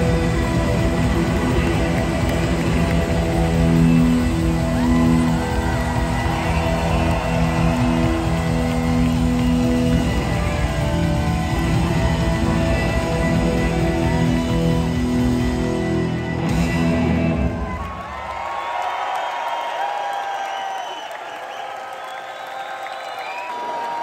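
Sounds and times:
live blues-rock band: 0.0 - 17.6.

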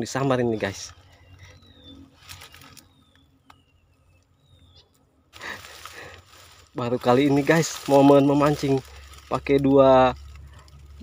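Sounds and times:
loud rustling: 5.4 - 11.0.

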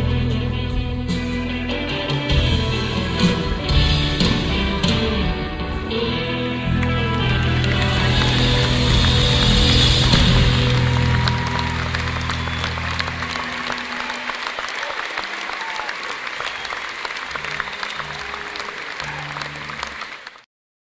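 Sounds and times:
audience applauding: 6.6 - 20.5.

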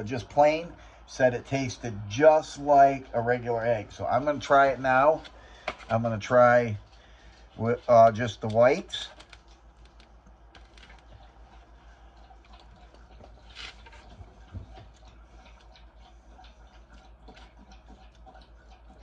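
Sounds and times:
low steady hum: 0.0 - 19.0
man chewing: 6.8 - 19.0.

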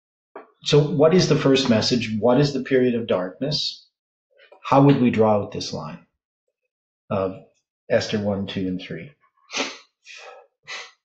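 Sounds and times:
man blowing breathy bursts into hand: 9.5 - 10.9.

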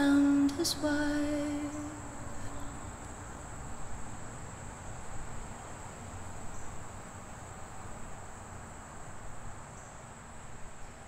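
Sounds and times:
crickets trilling: 0.0 - 10.8
night ambience hiss: 0.0 - 11.0.

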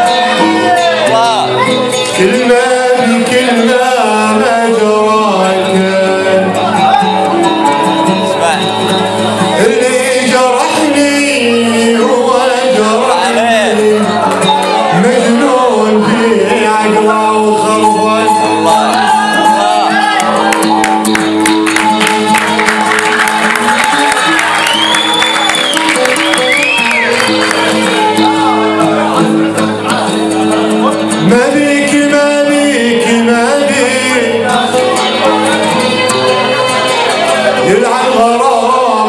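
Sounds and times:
man singing: 0.0 - 7.6, 8.2 - 20.5, 26.0 - 39.0
audience shouting: 18.3 - 30.2.

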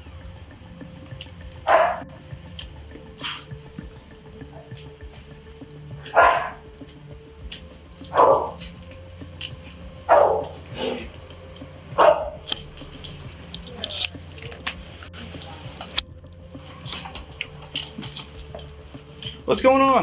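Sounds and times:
dog barking: 1.7 - 2.0, 6.1 - 6.6, 8.1 - 8.6, 10.1 - 10.6, 12.0 - 12.4.

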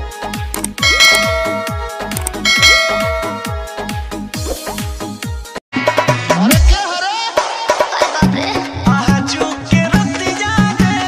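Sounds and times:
bell chime: 0.8 - 3.9
electronic music with steady beat: 0.8 - 3.9.

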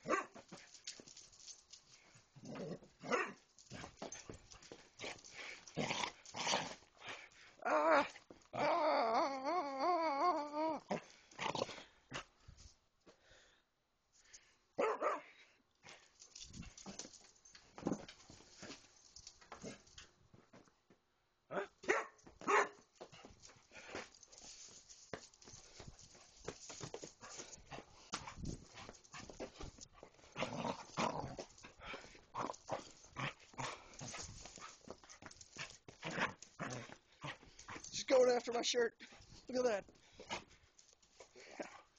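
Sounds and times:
dog barking: 0.0 - 0.4, 3.0 - 3.4, 14.8 - 15.3, 21.5 - 22.8
scuffles: 21.8 - 41.9
dog growling: 30.3 - 34.2.

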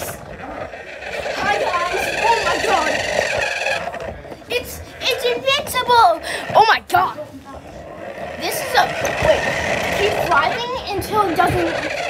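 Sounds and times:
small electric motor whining: 0.0 - 4.5, 7.8 - 12.0
indistinct voices: 0.0 - 12.0.

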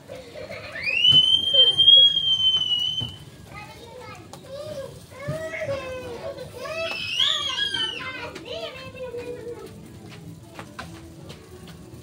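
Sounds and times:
children's voices: 3.4 - 9.8
child shrieking: 6.6 - 8.2.

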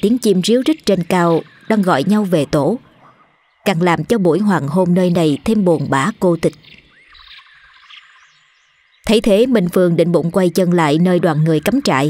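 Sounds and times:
narration: 0.0 - 6.8, 9.0 - 12.0
faint birds chirping: 0.0 - 12.0.

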